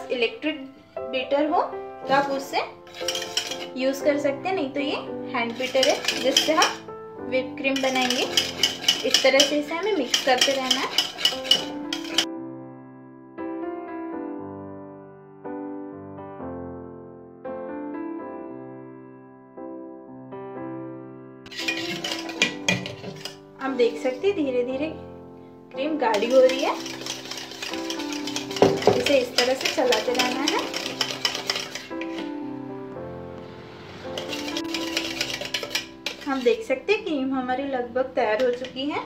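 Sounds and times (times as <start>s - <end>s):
soft background music: 0.0s - 39.0s
whisk clinking against metal bowl: 2.1s - 4.2s, 5.4s - 6.9s, 7.5s - 12.3s, 21.5s - 24.4s, 26.0s - 32.4s, 34.1s - 36.8s, 38.4s - 39.0s.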